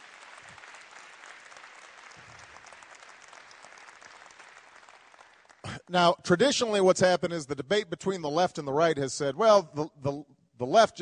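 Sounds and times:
audience applauding: 0:00.0 - 0:05.8.

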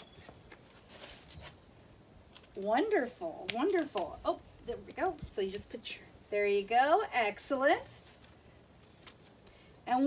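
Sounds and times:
feathers rustling: 0:07.3 - 0:09.4.

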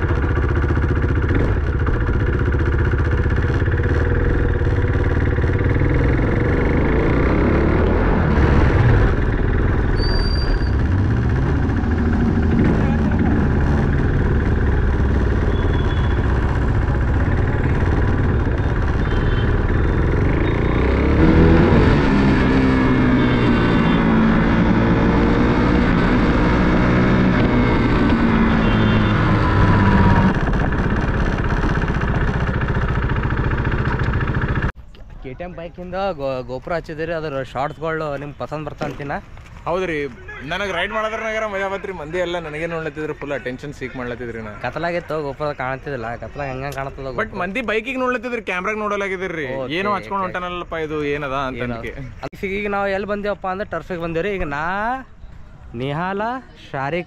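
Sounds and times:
motorcycle engine running: 0:00.0 - 0:34.8.

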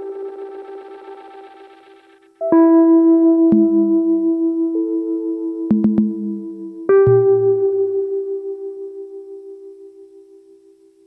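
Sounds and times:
held keyboard note: 0:00.0 - 0:08.4.

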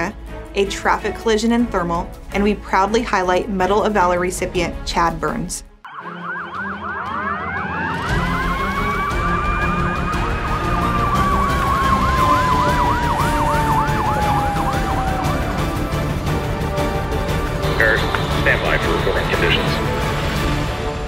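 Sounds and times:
fire engine siren yelp: 0:05.9 - 0:17.0
fire engine siren wail: 0:05.9 - 0:17.2.

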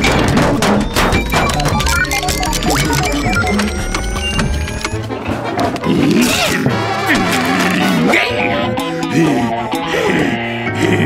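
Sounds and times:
clattering sound effects: 0:00.0 - 0:07.9
cartoon background music: 0:00.0 - 0:11.0.

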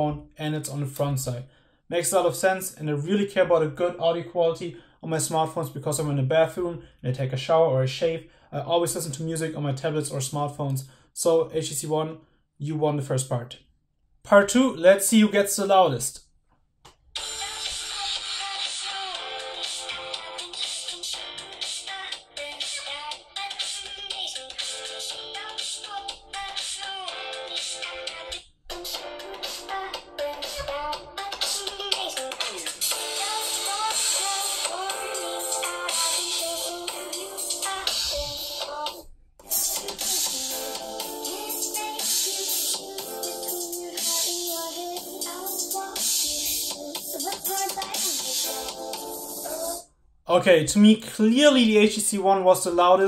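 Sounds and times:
pop song through phone speaker: 0:00.0 - 0:06.6, 0:17.1 - 0:53.0.

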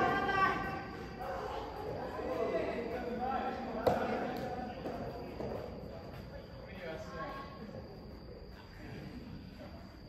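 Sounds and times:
players' voices: 0:00.0 - 0:09.6.

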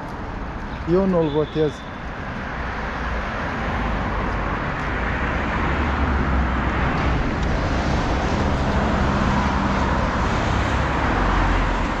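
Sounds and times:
traffic on wet road: 0:00.0 - 0:12.0.

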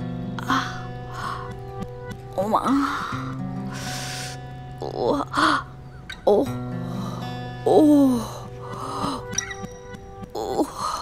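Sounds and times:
music with low held notes: 0:00.0 - 0:11.0
woman breathing: 0:00.4 - 0:01.6, 0:02.7 - 0:04.5, 0:08.2 - 0:09.4.

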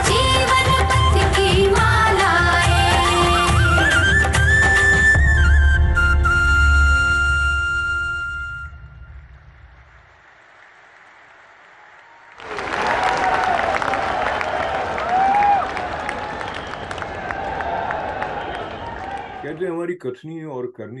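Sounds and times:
flute-led music: 0:00.0 - 0:09.5
audience applause: 0:09.5 - 0:19.7.

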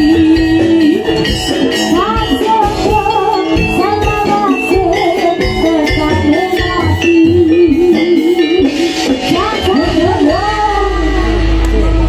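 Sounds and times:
live band melody: 0:00.0 - 0:12.0
steady low bass: 0:07.2 - 0:12.0.

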